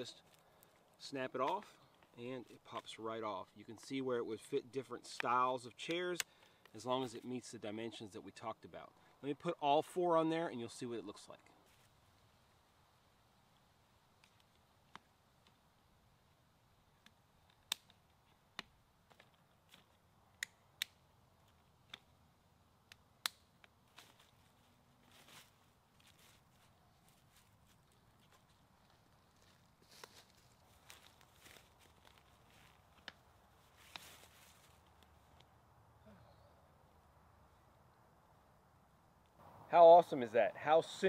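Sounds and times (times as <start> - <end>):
rustling and handling noise: 23.6 - 35.6.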